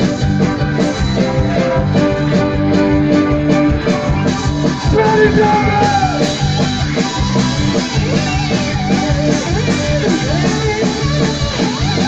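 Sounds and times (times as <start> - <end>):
bass guitar: 0.0 - 12.0
drums with steady beat: 0.0 - 12.0
electric guitars: 0.0 - 12.0.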